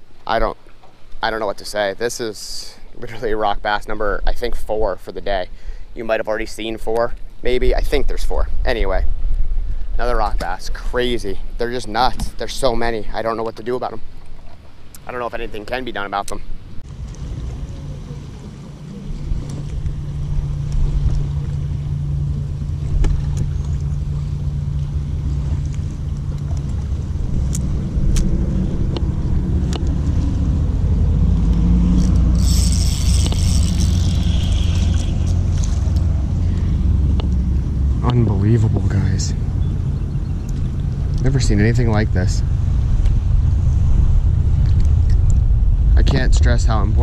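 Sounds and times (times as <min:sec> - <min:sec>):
steady low hum: 0:00.0 - 0:47.0
wind and water rumble: 0:00.0 - 0:47.0.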